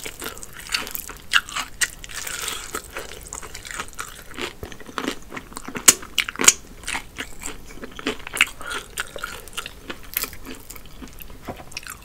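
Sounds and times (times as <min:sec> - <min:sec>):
chewing crunchy fried chicken: 0:00.0 - 0:12.0.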